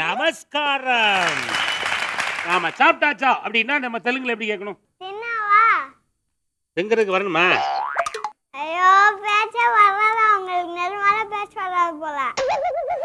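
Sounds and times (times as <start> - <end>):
comic boing sound effect: 7.6 - 8.3
girl speaking sing-song: 8.6 - 12.4.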